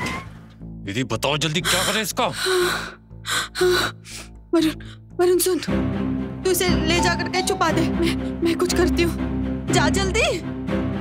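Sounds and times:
tense dramatic music: 0:00.0 - 0:11.0.

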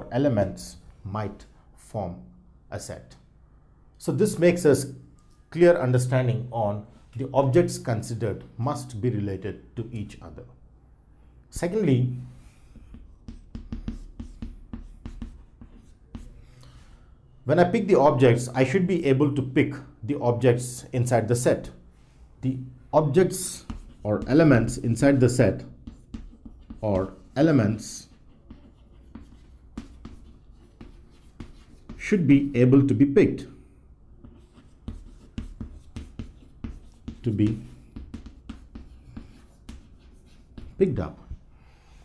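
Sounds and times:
chalk writing on chalkboard: 0:12.2 - 0:16.7, 0:23.1 - 0:32.1, 0:33.4 - 0:42.0.

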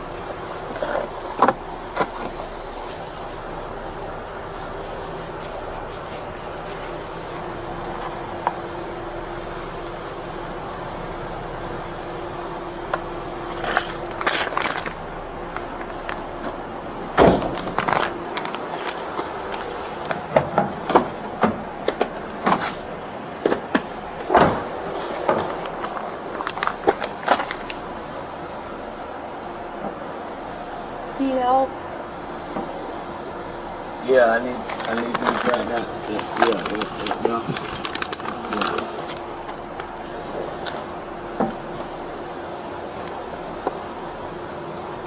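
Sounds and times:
rustling: 0:00.0 - 0:08.6, 0:17.2 - 0:28.4, 0:34.5 - 0:43.6
steady hum: 0:00.0 - 0:45.0
car door opening: 0:15.8 - 0:27.6
knocks and clunks: 0:16.4 - 0:18.5, 0:19.1 - 0:27.6
loud thump: 0:17.2 - 0:17.8.

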